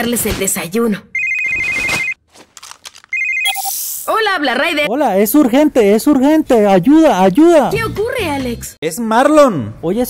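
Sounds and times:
two-tone electronic ring: 1.2 - 2.2, 3.1 - 3.9.

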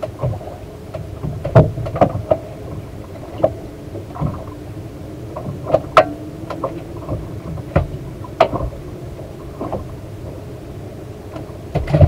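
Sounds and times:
low wash of water: 0.0 - 12.0
waves slapping against boat hull: 0.0 - 12.0.

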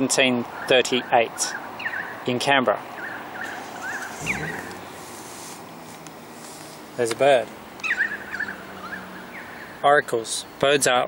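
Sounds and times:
bird calling with warbling chirps: 3.0 - 5.3, 7.8 - 9.8.

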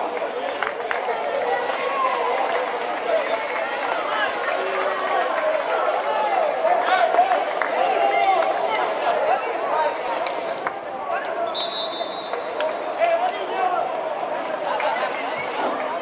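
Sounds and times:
crowd shouting at a football pitch: 0.0 - 16.0.

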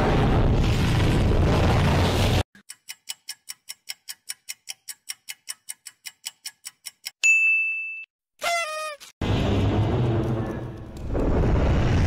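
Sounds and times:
clock ticking fast: 2.6 - 7.2
bright ding: 7.2 - 8.1.

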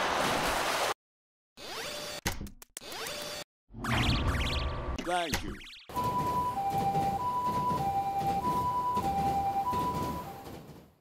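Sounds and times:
ambulance two-tone siren: 5.9 - 10.6.

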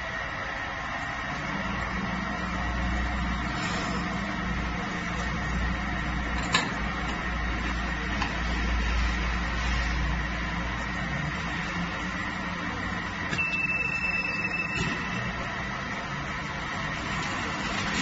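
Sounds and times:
glass washing machine running: 0.0 - 18.0
steady high tone: 13.3 - 15.7.

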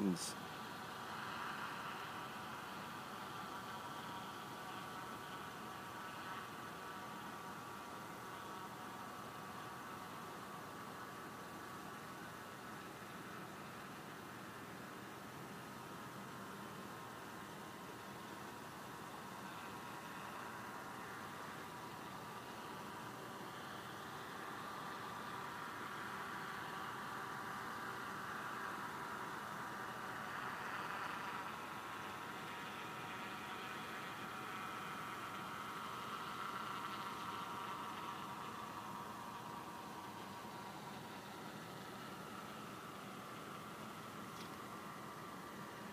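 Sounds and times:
distant helicopter droning: 0.0 - 45.9.

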